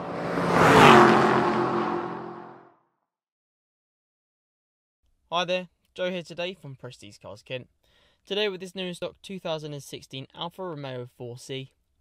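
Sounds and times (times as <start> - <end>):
car passing by: 0.0 - 2.6.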